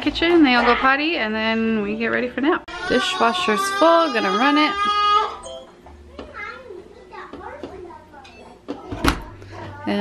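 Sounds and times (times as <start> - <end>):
dishwasher door thumping shut: 8.9 - 9.3.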